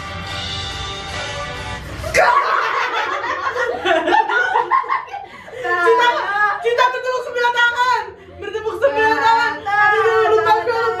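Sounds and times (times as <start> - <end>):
women laughing and cheering: 2.1 - 7.0.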